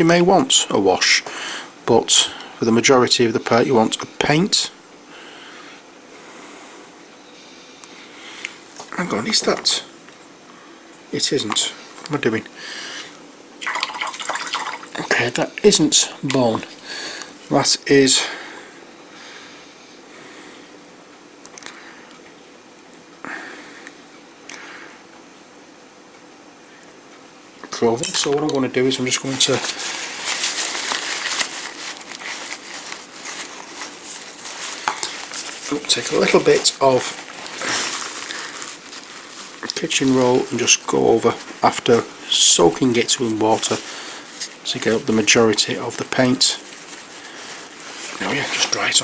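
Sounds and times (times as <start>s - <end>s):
liquid swishing in a container: 13.6s - 15.4s
paper towel crumpling: 28.2s - 49.0s.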